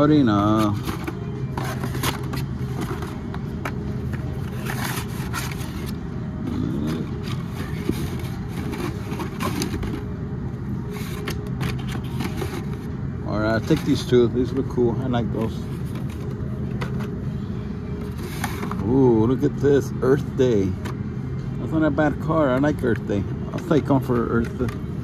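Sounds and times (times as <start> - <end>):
low background hum: 0.0 - 25.0
plastic packs clicking and scraping: 0.3 - 10.0, 10.9 - 14.2.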